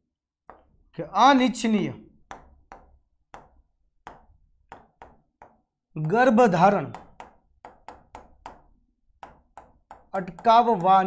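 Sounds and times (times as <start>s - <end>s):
pen tapping on writing board: 0.5s - 0.8s, 2.2s - 11.0s.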